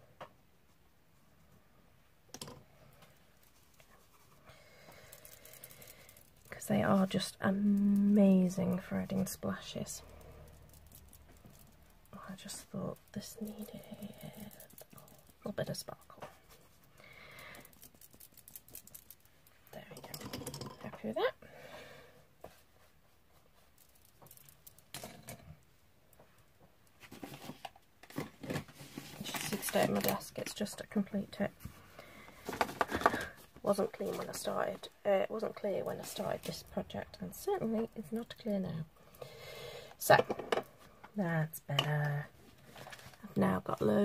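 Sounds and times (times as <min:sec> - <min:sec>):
faint clicks and handling noise: 0:02.3 - 0:21.3, 0:22.4 - 0:34.9
faint rustle with small ticks: 0:02.9 - 0:20.0, 0:22.4 - 0:25.0.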